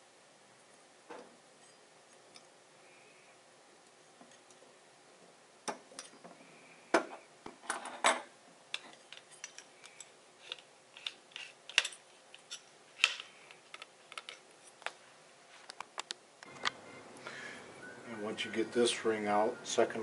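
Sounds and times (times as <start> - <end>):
metal parts clattering on wood: 7.6 - 14.5.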